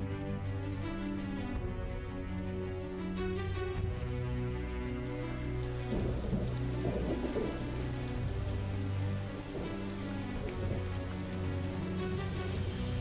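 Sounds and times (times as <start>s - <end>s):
rain-like hiss: 4.9s - 13.0s.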